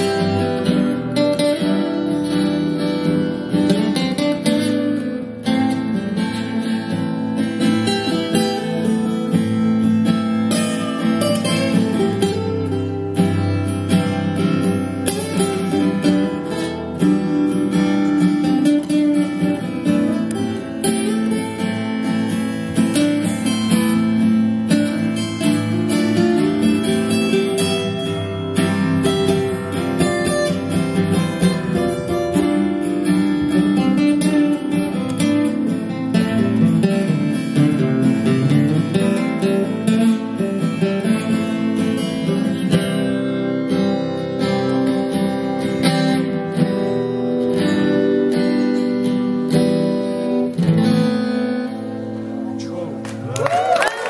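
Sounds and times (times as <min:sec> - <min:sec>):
acoustic guitar strummed and picked: 0:00.0 - 0:54.0.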